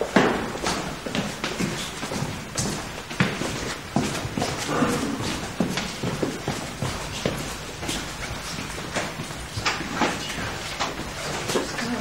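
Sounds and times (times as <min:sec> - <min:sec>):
footsteps on hard floor: 0:00.0 - 0:12.0.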